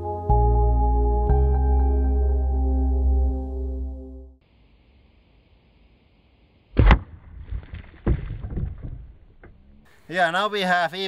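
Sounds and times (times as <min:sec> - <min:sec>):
background music: 0:00.0 - 0:04.4
sharp thump: 0:06.8 - 0:09.6.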